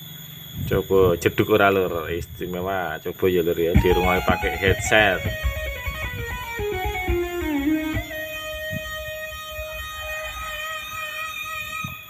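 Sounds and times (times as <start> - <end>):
faint low beat: 3.6 - 12.0
instrumental music through speaker: 3.7 - 12.0.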